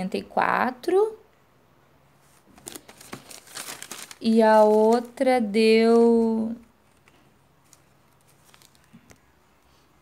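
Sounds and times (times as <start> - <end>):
paper receipt rustling and crinkling: 2.2 - 9.4.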